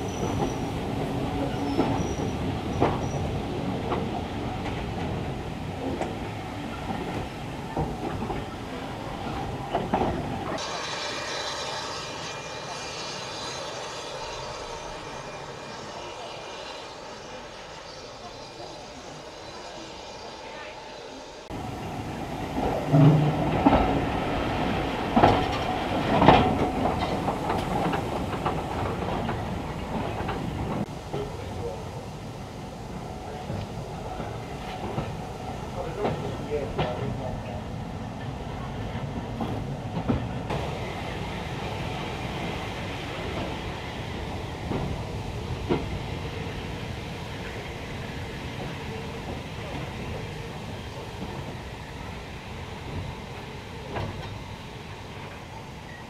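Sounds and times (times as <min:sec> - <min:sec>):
railway carriage rumble: 0:00.0 - 0:56.0.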